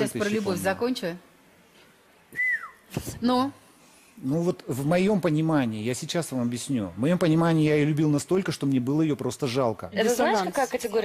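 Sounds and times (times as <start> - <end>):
short falling whistle: 2.3 - 3.0.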